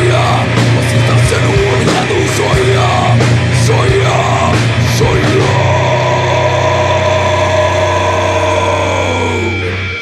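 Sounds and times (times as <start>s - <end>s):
distorted guitar chord ringing: 0.0s - 10.0s.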